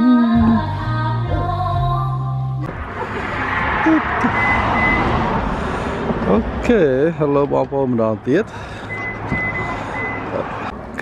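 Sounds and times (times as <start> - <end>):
vehicle driving past: 2.7 - 10.7
short high beeps: 4.3 - 5.1.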